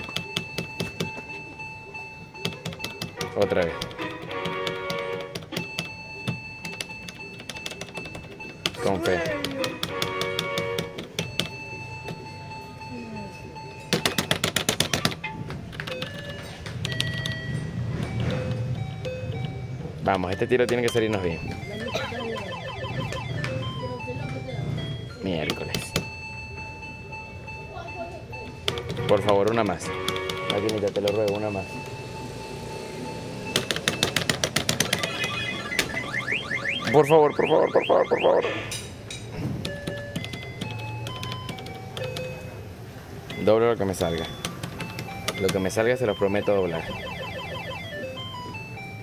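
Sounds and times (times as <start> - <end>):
slot machine electronic beeps: 0.0 - 49.0.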